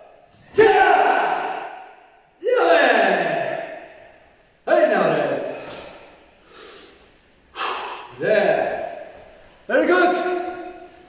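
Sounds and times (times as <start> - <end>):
man shouting: 0.4 - 4.1, 9.7 - 11.0
hard breath out: 5.5 - 8.1.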